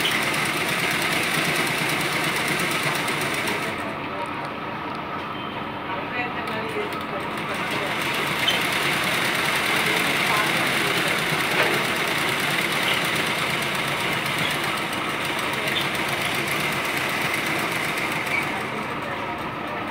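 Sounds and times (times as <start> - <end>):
sewing machine running: 0.0 - 4.0, 6.5 - 19.9.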